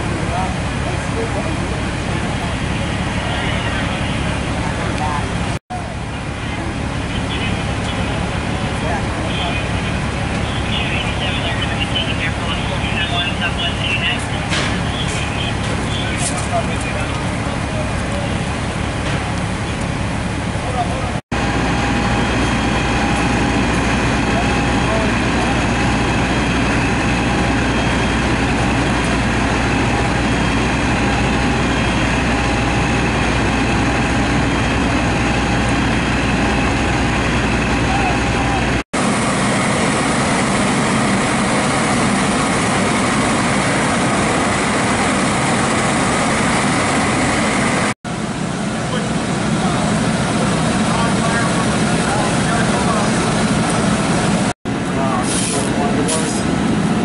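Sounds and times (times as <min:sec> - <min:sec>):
diesel engines running: 0:00.0 - 0:57.0.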